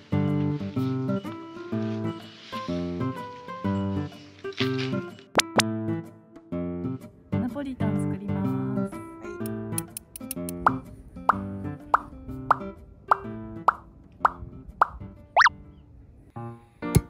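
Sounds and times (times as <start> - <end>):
sharp pops: 5.3 - 5.7.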